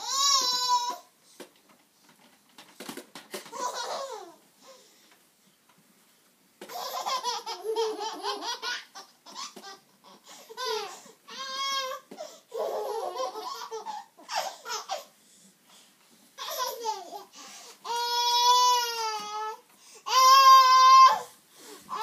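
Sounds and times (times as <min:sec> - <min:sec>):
babies laughing and babbling: 0:03.5 - 0:04.4, 0:06.7 - 0:15.1, 0:16.4 - 0:21.3.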